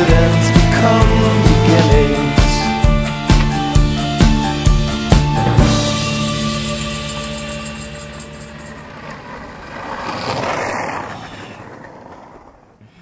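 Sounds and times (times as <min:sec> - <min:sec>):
skateboard wheels rolling on asphalt: 0:07.2 - 0:13.0.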